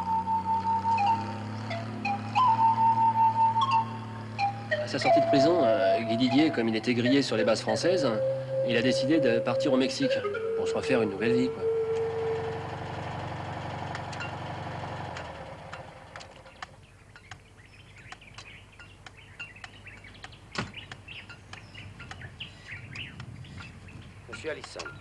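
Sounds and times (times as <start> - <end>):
truck engine running: 0.0 - 16.8
birds chirping: 0.0 - 25.0.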